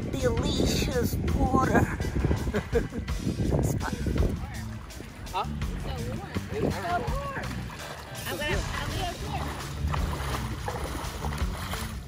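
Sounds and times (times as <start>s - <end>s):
wind buffeting microphone: 0.0s - 12.0s
water splashing while wading: 0.6s - 12.0s.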